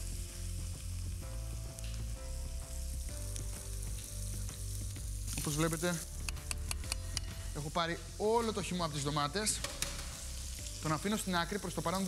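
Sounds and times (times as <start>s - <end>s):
sausages sizzling in a pan: 0.0s - 12.0s.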